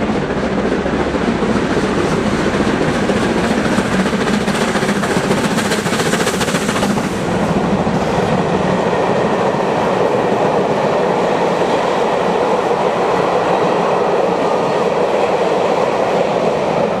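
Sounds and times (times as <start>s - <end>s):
train wheels clattering on rails: 0.0s - 17.0s.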